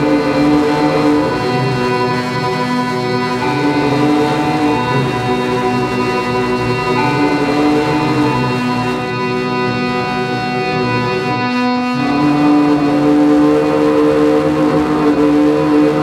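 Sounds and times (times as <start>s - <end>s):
electronic drone music: 0.0s - 16.0s.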